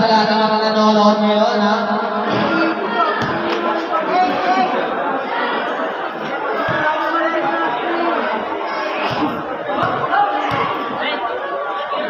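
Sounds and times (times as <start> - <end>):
spectators chattering and calling out: 0.0 - 12.0.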